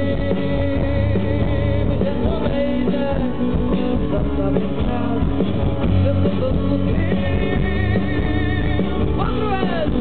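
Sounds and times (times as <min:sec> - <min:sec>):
live rock band playing: 0:00.0 - 0:10.0.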